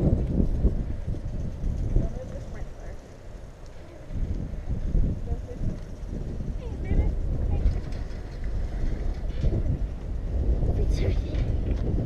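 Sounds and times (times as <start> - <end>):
wind buffeting microphone: 0.0 - 12.0
faint children's voices: 3.6 - 10.0, 10.6 - 11.6.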